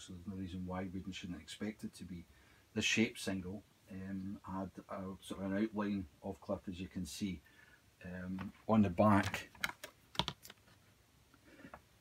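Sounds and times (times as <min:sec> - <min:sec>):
vinyl record flipped by hand: 0:08.3 - 0:10.9.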